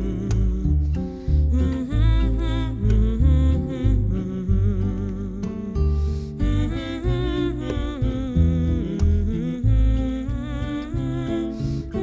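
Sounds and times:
double bass: 0.0s - 12.0s
guitars: 0.0s - 12.0s.

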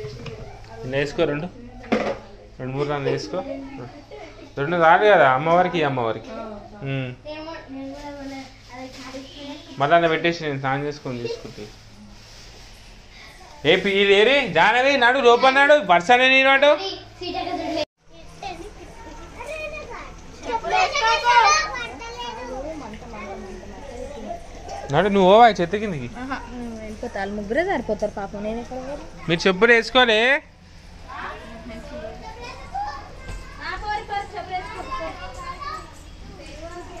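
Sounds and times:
children talking and calling out: 0.0s - 4.6s, 5.4s - 9.8s, 16.7s - 29.7s, 30.6s - 37.0s.

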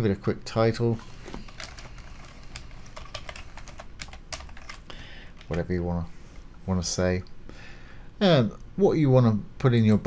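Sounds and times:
computer keyboard typing: 1.4s - 5.6s.

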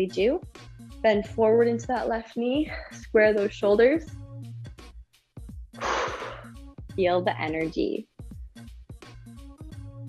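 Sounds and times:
quiet background music: 0.0s - 4.7s, 5.8s - 8.3s
woman exhaling: 5.8s - 6.6s.

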